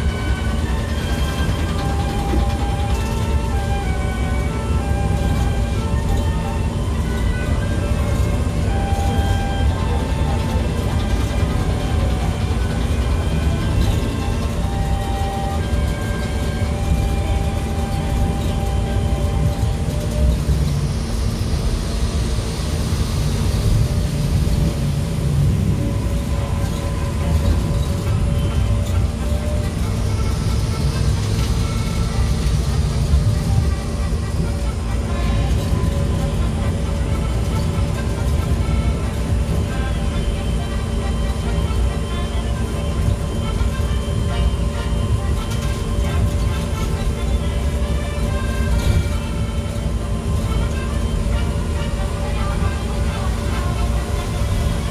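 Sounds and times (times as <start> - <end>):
music playing: 0.0 - 21.2, 23.8 - 54.9
monorail car rumbling on track: 0.0 - 54.9.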